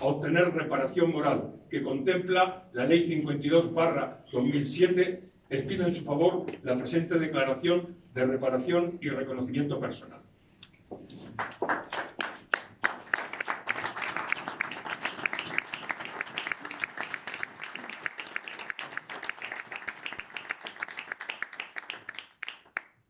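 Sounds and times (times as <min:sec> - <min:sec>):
people applauding: 0:11.2 - 0:23.0.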